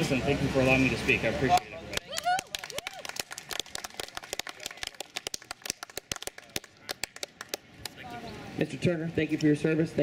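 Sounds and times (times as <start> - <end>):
crowd applause: 1.5 - 8.0.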